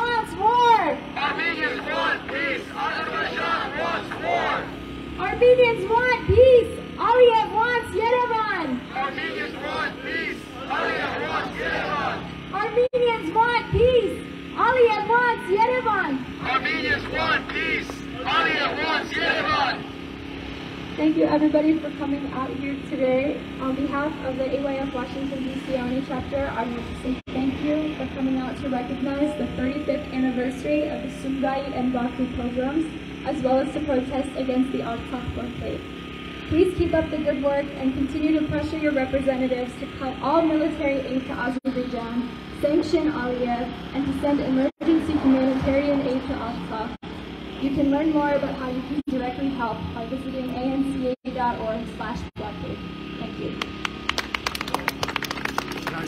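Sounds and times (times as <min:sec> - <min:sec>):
woman talking over loudspeaker: 0:00.0 - 0:01.0, 0:05.2 - 0:08.9, 0:12.5 - 0:16.3, 0:21.0 - 0:35.8, 0:36.5 - 0:47.0, 0:47.6 - 0:53.6.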